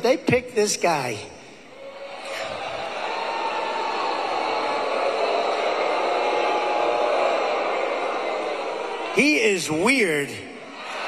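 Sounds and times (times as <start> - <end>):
audience cheering and applauding: 1.8 - 11.0.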